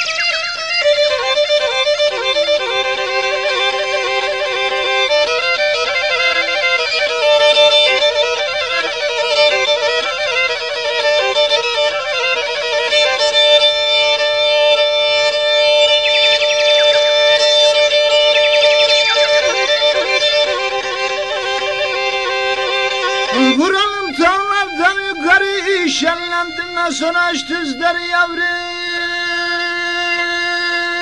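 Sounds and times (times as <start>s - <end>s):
folk fiddle melody: 0.0s - 31.0s.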